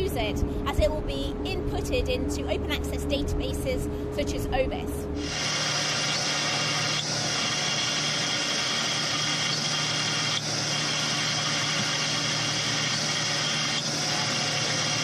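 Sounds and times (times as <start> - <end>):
machinery hum: 0.0 - 15.0.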